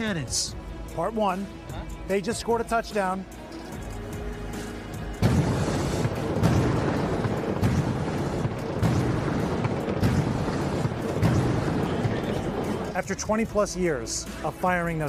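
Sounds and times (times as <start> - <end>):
smoke cannons blasting: 4.6 - 13.4
cannons booming: 5.1 - 13.2.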